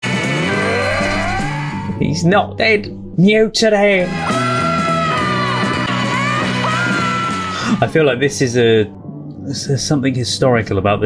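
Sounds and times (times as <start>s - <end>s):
man yelling: 4.0s - 7.9s.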